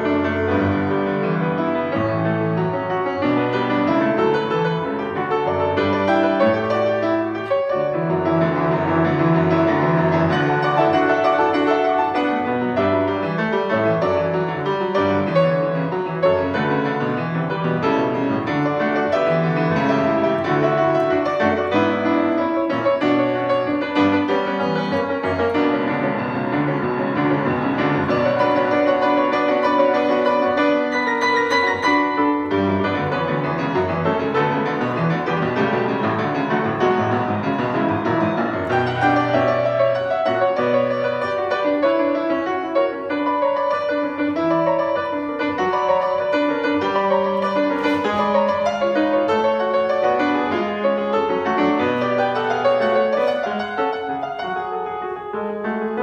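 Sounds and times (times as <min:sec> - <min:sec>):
solo grand piano: 0:00.0 - 0:56.0.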